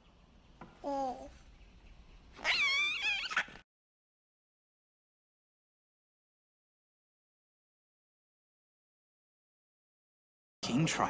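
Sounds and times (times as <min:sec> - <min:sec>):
baby cooing: 0:00.8 - 0:01.4
baby laughing: 0:02.4 - 0:03.6.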